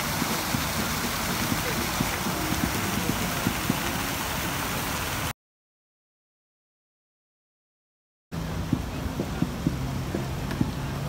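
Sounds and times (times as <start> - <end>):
faint voices: 0.0 - 4.7, 8.4 - 11.0
fountain water splashing: 0.0 - 5.3, 8.4 - 11.0.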